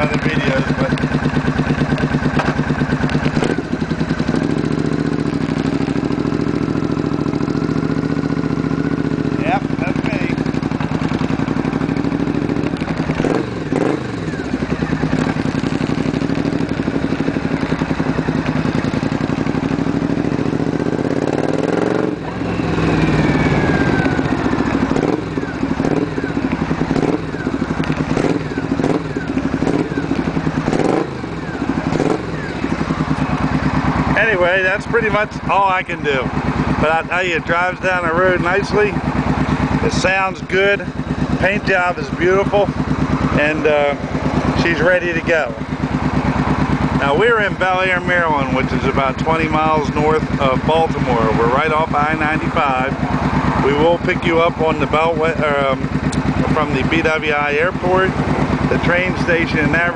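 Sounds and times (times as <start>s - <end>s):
motorcycle engine riding: 0.0s - 59.9s.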